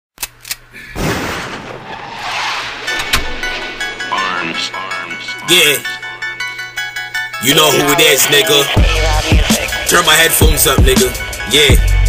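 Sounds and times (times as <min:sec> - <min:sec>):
sharp cracks: 0:00.2 - 0:03.9
instrumental beat: 0:03.8 - 0:12.0.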